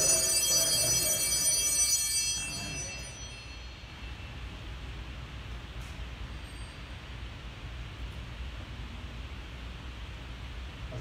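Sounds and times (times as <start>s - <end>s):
altar bells ringing: 0.0s - 4.6s, 6.2s - 7.2s
steady low hiss: 2.6s - 11.0s.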